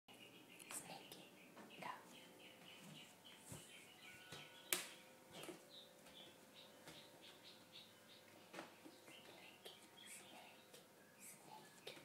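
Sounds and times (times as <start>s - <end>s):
faint whispering: 0.6s - 2.2s, 9.1s - 12.0s.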